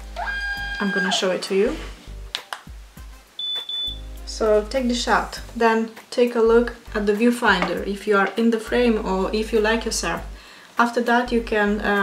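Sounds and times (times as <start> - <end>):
high electronic beep: 3.4 - 4.0.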